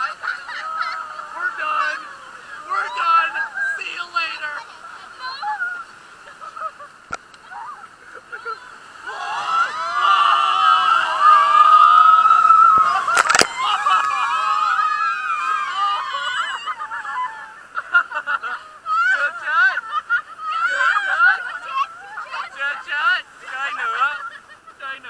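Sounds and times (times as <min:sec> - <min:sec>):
people screaming and yelling: 0:00.0 - 0:03.8, 0:08.5 - 0:17.8, 0:18.5 - 0:22.6
water rushing and splashing: 0:00.0 - 0:25.0.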